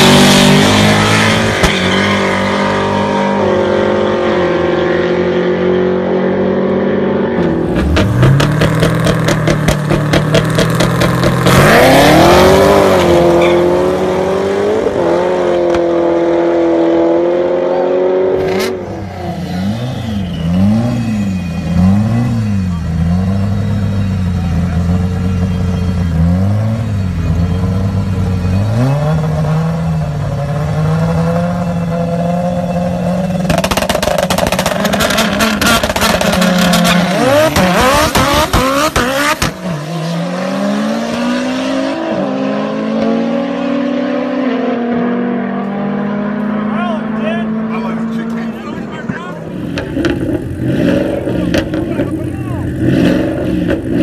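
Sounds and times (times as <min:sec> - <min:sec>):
race car engine revving: 0:00.0 - 0:54.0
race car engines accelerating: 0:00.0 - 0:54.0.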